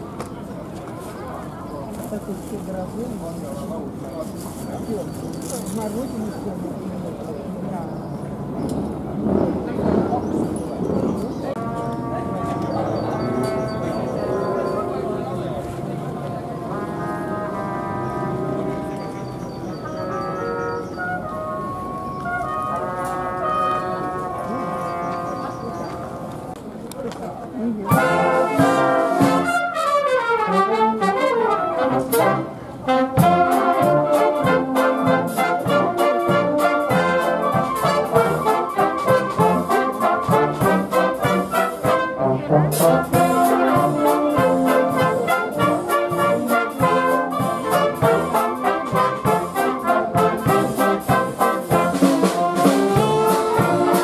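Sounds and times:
military wind band playing: 8.4 - 26.6, 27.8 - 54.0.

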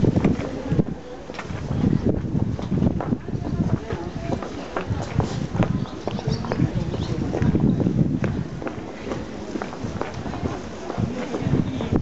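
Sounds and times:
footsteps on pavement: 0.0 - 12.0
passers-by talking: 0.0 - 12.0.

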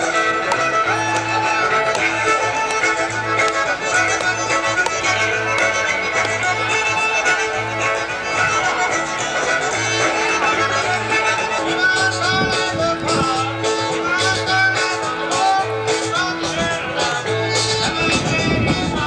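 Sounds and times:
bluegrass string band music: 0.0 - 19.0.

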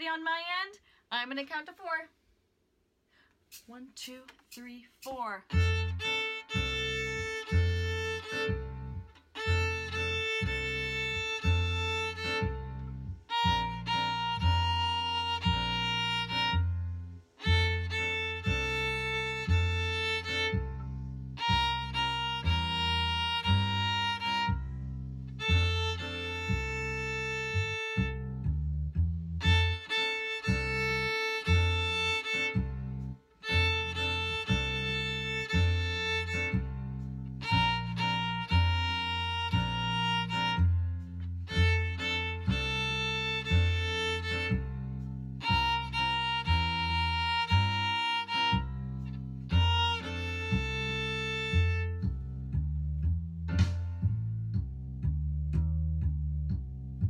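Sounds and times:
backing track with bass beat: 3.3 - 57.0
violin melody: 5.5 - 53.7.

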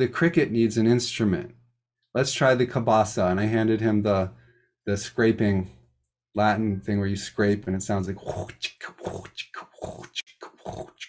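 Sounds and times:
person making rasping mouth sounds: 8.2 - 11.0.

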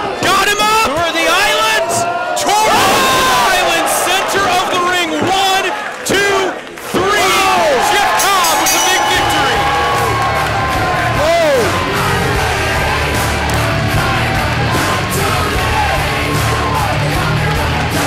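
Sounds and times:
crowd shouting and cheering: 0.0 - 18.0
loud rock music: 9.2 - 18.0.

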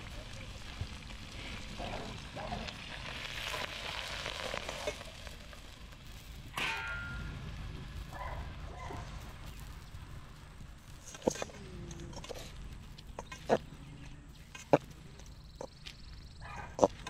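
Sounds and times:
shrimp sizzling: 0.0 - 13.6
metallic clang with ring: 6.6 - 7.3.

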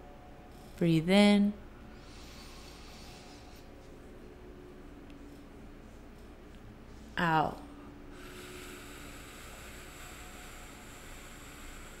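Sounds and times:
soft slow breath in: 1.9 - 4.0, 8.1 - 12.0.

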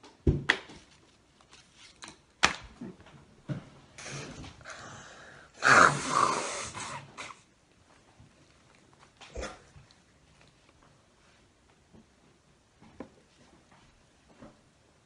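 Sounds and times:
woman blowing her nose: 5.6 - 7.4.

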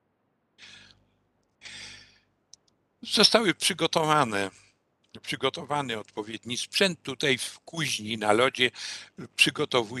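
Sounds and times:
man breathing into microphone: 1.6 - 2.3.

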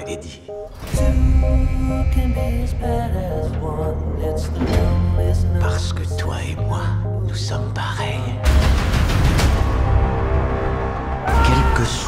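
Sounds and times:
trailer score music: 0.0 - 12.0.

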